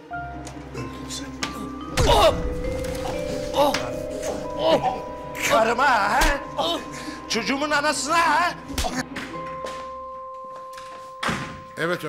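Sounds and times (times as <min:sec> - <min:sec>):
background music note: 0:00.0 - 0:12.0
door shutting with a thunk: 0:11.2 - 0:11.7.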